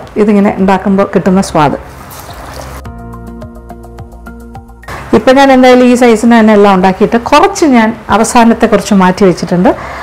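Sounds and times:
hot oil sizzling: 0:01.8 - 0:02.9
background music with held chord: 0:02.1 - 0:05.2.

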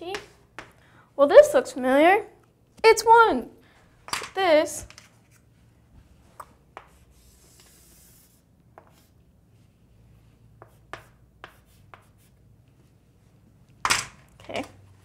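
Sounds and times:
chalk tapping on board: 0:06.4 - 0:07.8, 0:10.5 - 0:12.4
chalk scratching on chalkboard: 0:06.8 - 0:12.4.

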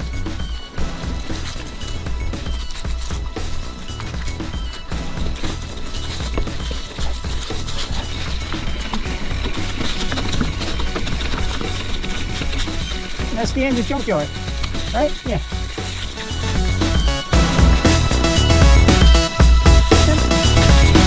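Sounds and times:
mountain bike rattling and knocking: 0:00.0 - 0:16.7
music playing: 0:00.0 - 0:21.0.

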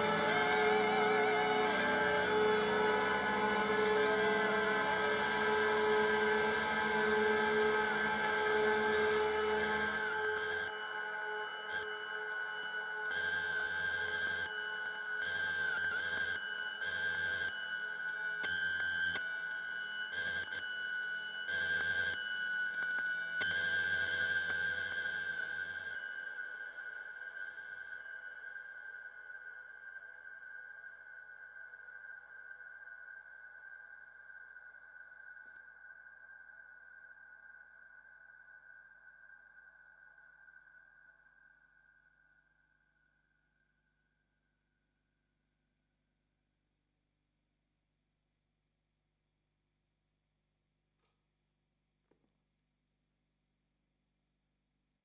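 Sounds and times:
ambient electric guitar drone: 0:00.0 - 0:33.2.

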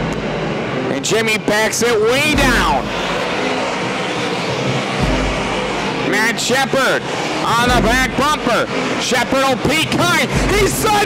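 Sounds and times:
race car engines at speed: 0:00.0 - 0:11.0
deep low rumble: 0:02.3 - 0:06.1, 0:07.0 - 0:08.5.

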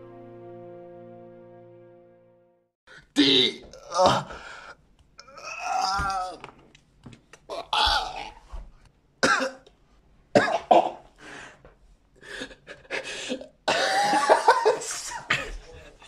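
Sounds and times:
person coughing: 0:09.2 - 0:09.7, 0:10.4 - 0:11.1, 0:13.2 - 0:15.8.

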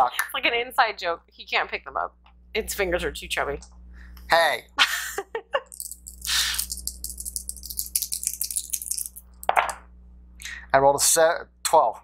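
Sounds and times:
dice rolling into a tray: 0:05.6 - 0:09.7.

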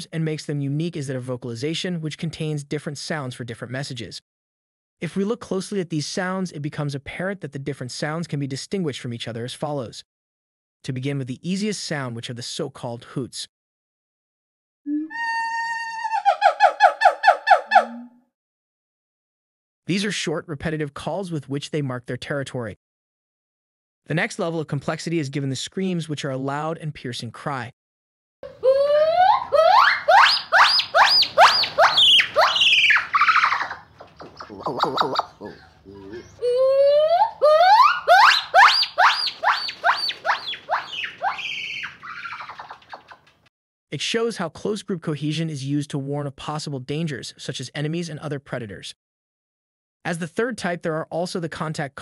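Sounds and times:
gibbon hooting: 0:14.9 - 0:18.2, 0:28.4 - 0:43.2.

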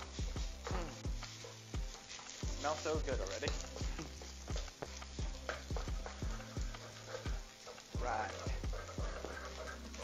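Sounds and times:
food sizzling: 0:00.0 - 0:10.0
wooden spatula knocking in a pan: 0:03.5 - 0:10.0.

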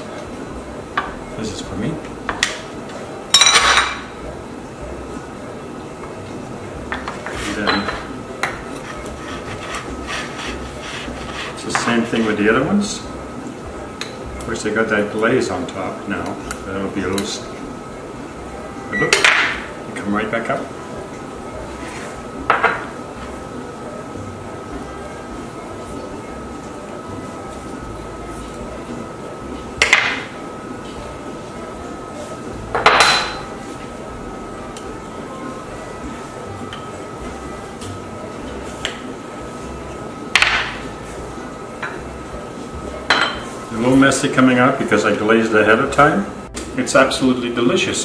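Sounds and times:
faint high hum: 0:00.0 - 0:48.0
ceramic dishes clinking: 0:03.3 - 0:04.0, 0:06.9 - 0:08.6, 0:43.1 - 0:43.5
ceramic ramekins clinking: 0:07.6 - 0:08.1.

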